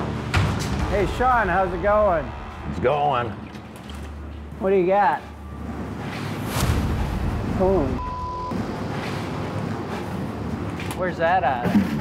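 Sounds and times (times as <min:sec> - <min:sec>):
censor beep: 0:08.0 - 0:08.6.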